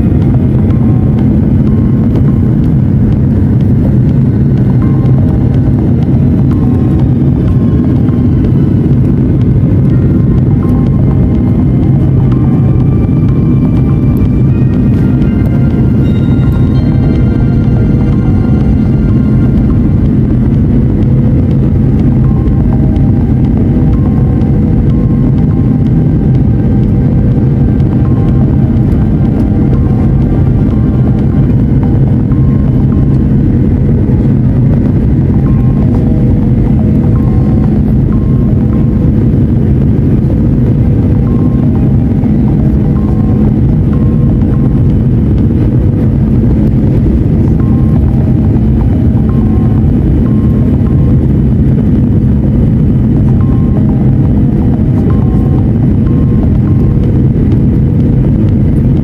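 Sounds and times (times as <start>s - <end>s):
background music: 0.0s - 59.0s
jet engine roar in cabin: 0.0s - 59.0s.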